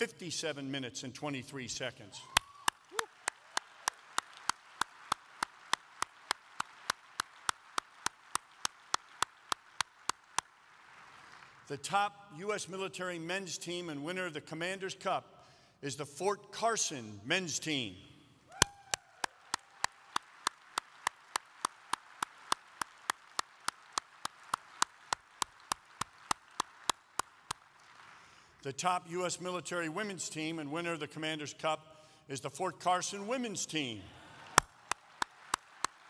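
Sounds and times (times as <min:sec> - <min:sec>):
faint audience applause: 0:02.2 - 0:11.7, 0:18.5 - 0:28.6, 0:34.1 - 0:36.0
hand claps near a microphone: 0:02.4 - 0:11.7, 0:18.6 - 0:28.3, 0:34.5 - 0:36.0.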